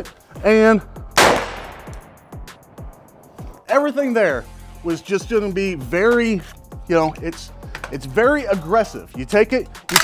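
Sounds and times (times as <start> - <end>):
rifle shot with echo: 1.2 - 2.8.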